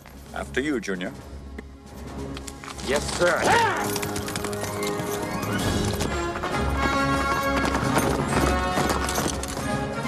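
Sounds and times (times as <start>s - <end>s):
film score music: 0.0s - 10.0s
horses galloping: 2.4s - 10.0s.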